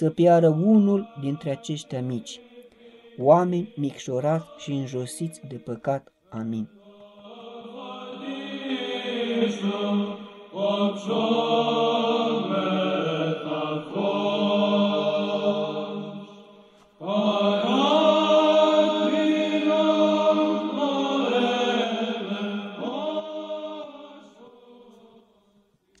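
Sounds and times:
church chant: 0.0s - 26.0s.

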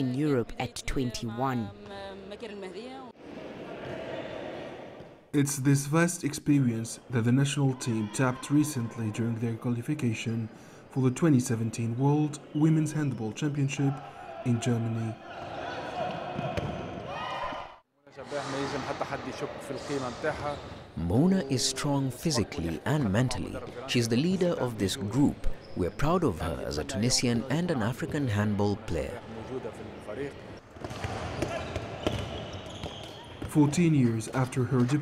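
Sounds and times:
balls bouncing on wooden court: 16.1s - 17.1s, 30.7s - 35.0s.

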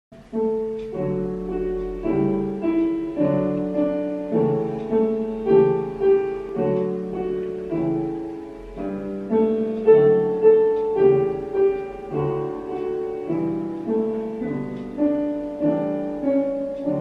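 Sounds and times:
piano playing: 0.1s - 17.0s.

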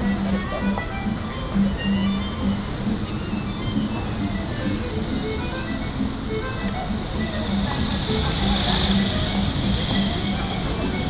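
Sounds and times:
city traffic rumble: 0.0s - 11.0s
jingly merry-go-round tune: 0.0s - 11.0s
hiss: 7.4s - 11.0s.

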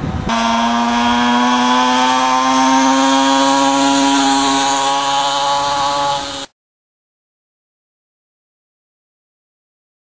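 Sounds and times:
two-stroke engines buzzing: 0.0s - 6.5s.

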